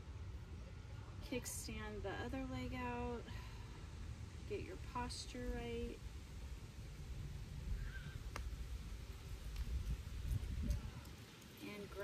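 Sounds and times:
wind buffeting microphone: 5.4 - 12.0.

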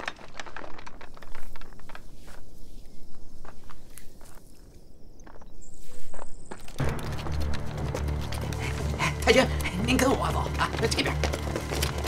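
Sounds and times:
footsteps on the ground: 0.0 - 12.0
background score low notes: 6.8 - 12.0.

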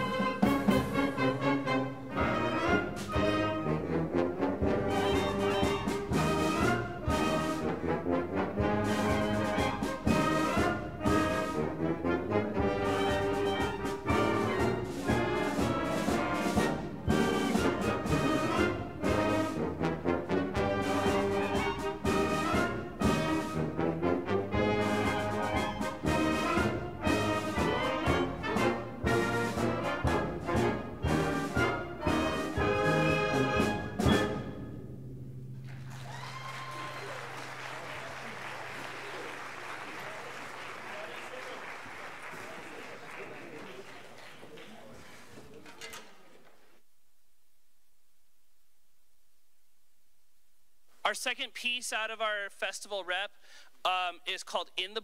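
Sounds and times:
concert band playing: 0.0 - 39.1.

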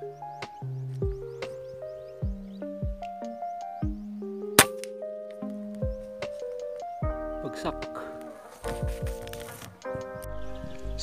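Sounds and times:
background music with steady beat: 0.0 - 11.0
air rifle shot: 4.6 - 5.0.

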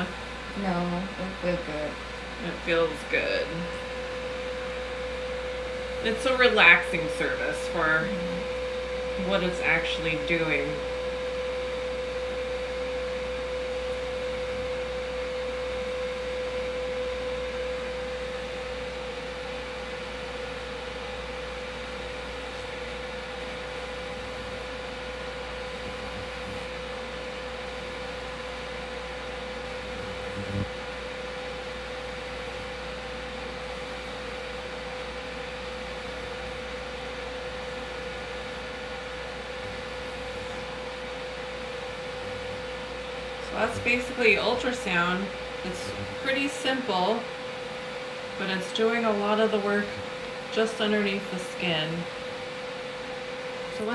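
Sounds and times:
ultrasound handpiece humming: 0.0 - 53.9.

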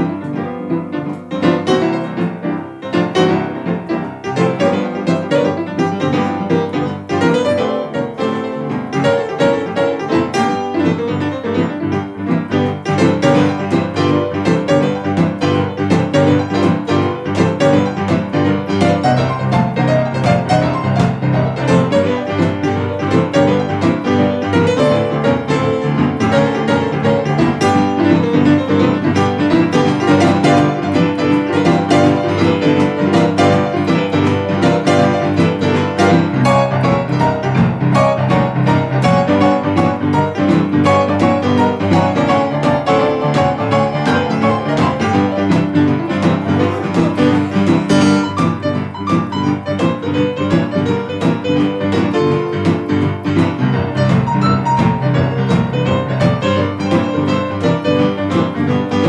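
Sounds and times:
boogie-woogie on two pianos: 0.0 - 59.0.

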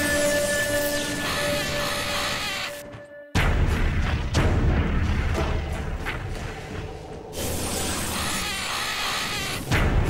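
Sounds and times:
background music: 0.0 - 8.7.

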